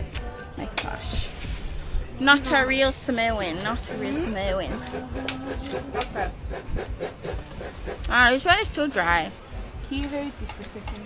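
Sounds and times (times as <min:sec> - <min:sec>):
scraping strokes: 0:03.4 - 0:08.1.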